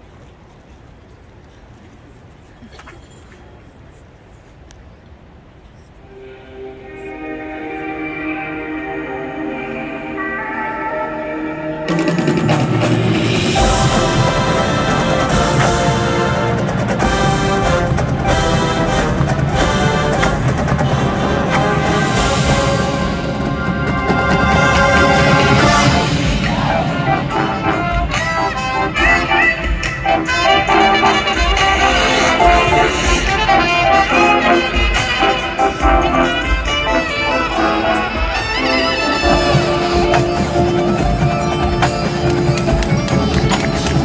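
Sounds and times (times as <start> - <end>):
brass chords: 6.0 - 44.0
drums: 11.5 - 44.0
sharp percussion hits: 11.9 - 44.0.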